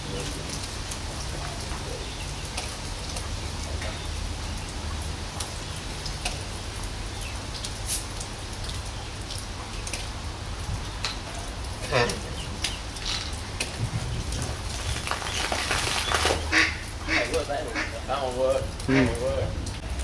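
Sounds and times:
wind rumble on microphone: 0:10.4 - 0:11.0, 0:13.4 - 0:15.7
hands handling plastic bottle: 0:14.4 - 0:16.5
footsteps on dirt path: 0:14.5 - 0:16.6.

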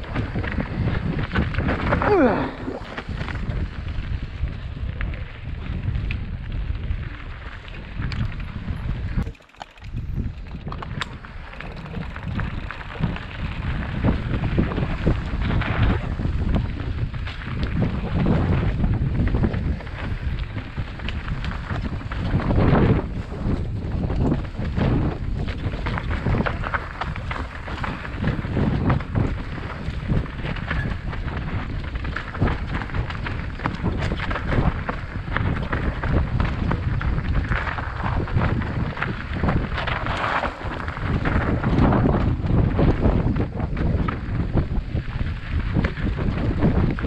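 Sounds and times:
mountain bike rumbling on dirt: 0:00.0 - 0:47.0
wind buffeting microphone: 0:00.0 - 0:47.0
small clicks and knocks: 0:08.1 - 0:12.8.

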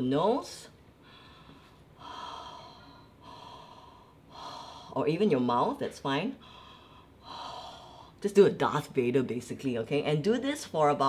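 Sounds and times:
woman breathing through nose: 0:01.0 - 0:05.0, 0:06.4 - 0:08.2.

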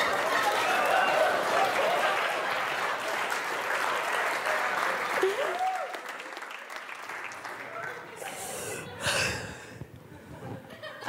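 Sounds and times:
audience applauding: 0:00.0 - 0:08.7
voices in crowd: 0:07.5 - 0:10.9.

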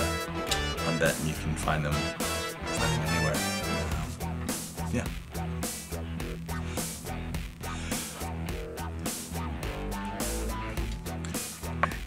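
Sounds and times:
guitar music with drum beat: 0:00.0 - 0:12.0.

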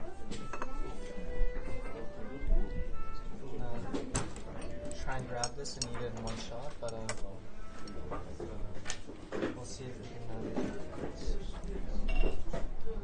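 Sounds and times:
dishes and cutlery clinking: 0:00.3 - 0:02.1, 0:03.8 - 0:09.7, 0:12.0 - 0:12.6.

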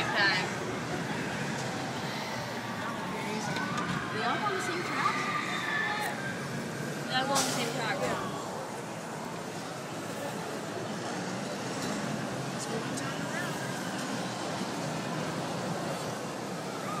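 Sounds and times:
faint indistinct voices: 0:00.0 - 0:17.0
theme park background noise: 0:00.0 - 0:17.0.

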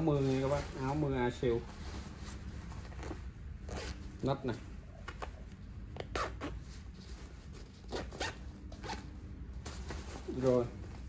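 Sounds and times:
fabric rustling: 0:00.0 - 0:04.6, 0:06.4 - 0:11.0
zipper on jacket pulled: 0:07.8 - 0:09.1.

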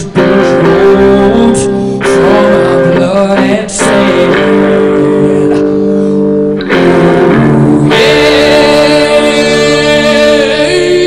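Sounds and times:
electric guitar sustained chords: 0:00.0 - 0:11.0
live rock band music: 0:00.0 - 0:11.0.

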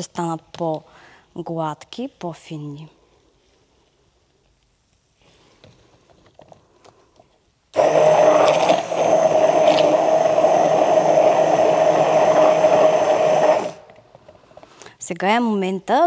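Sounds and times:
stick blender motor whine: 0:07.8 - 0:14.0.

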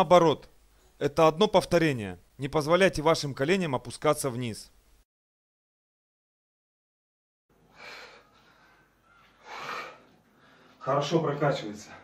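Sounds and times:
man breathing hard: 0:07.7 - 0:10.8.

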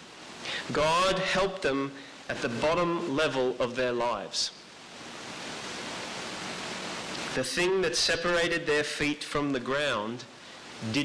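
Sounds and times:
steady recording hiss: 0:00.0 - 0:11.0.

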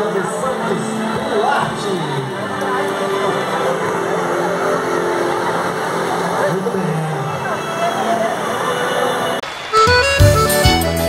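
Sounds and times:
street crowd noise: 0:00.0 - 0:11.0.

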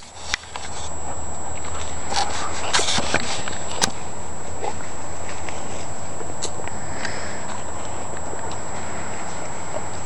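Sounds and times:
dog rustling through dry leaves: 0:00.0 - 0:06.1.

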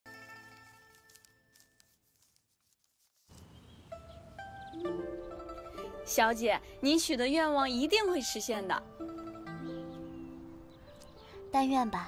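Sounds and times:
soft background music: 0:03.8 - 0:12.0.

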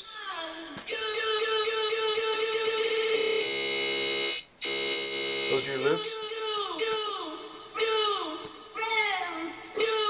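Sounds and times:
looped music buzzing tone: 0:00.9 - 0:08.8.

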